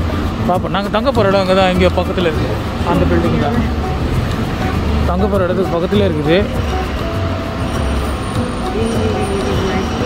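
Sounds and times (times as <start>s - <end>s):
background music: 0.0s - 10.0s
vehicle engines rumbling: 0.0s - 10.0s.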